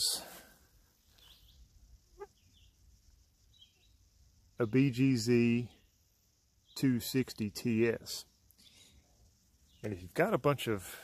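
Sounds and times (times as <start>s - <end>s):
faint high bird chirps: 0.9s - 10.2s.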